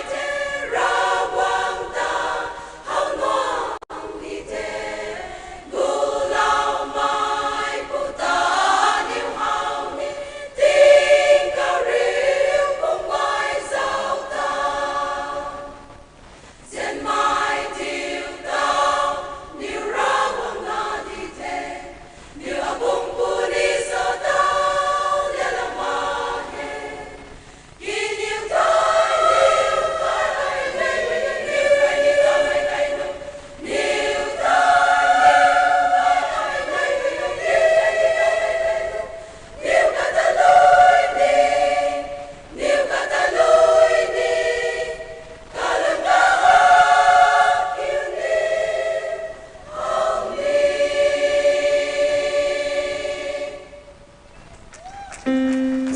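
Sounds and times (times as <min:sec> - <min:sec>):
women's choir singing: 0:00.0 - 0:16.0, 0:16.6 - 0:54.2.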